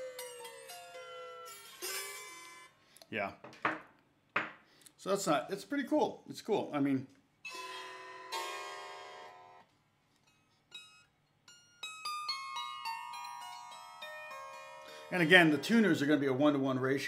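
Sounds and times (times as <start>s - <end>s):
plucked zither: 0.0s - 2.7s, 7.5s - 9.6s, 10.3s - 16.3s.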